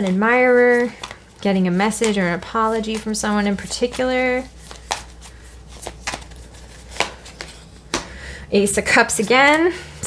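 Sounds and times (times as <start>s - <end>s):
cards snapping and tapping on table: 4.7s - 5.1s, 5.8s - 6.3s, 6.9s - 8.2s.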